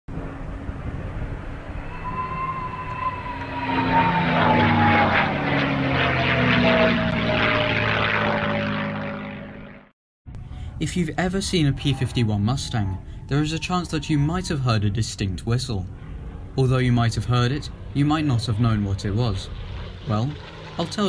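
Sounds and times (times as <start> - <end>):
propeller plane engine: 0.1 - 21.0
high whistle falling in pitch: 1.4 - 5.6, 11.6 - 14.7.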